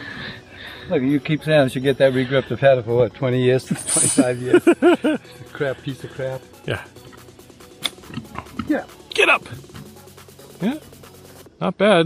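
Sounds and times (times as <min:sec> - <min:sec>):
golf club striking ball: 0:07.1 - 0:08.3.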